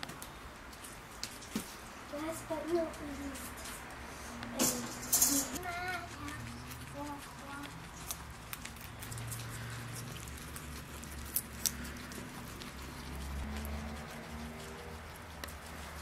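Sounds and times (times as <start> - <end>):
guinea pigs crunching carrot: 0.0 - 4.6, 5.6 - 16.0.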